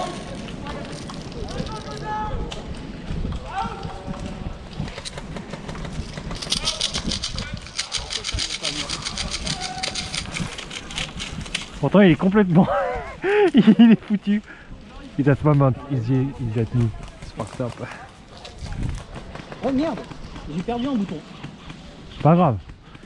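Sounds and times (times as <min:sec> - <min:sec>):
handling and rustling: 0:00.0 - 0:12.6
fast ratchet-like clicks: 0:04.9 - 0:11.7.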